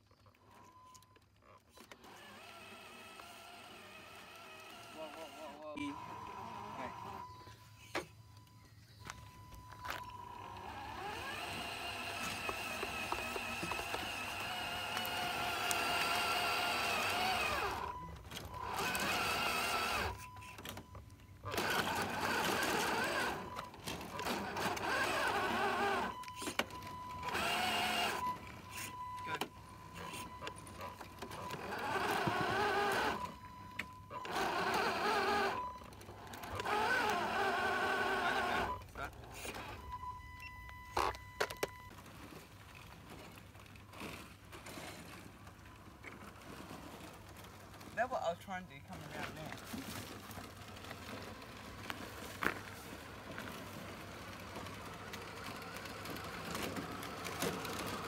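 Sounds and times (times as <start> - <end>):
toy truck electric motor whining: 0.1 - 48.2, 48.9 - 58.0.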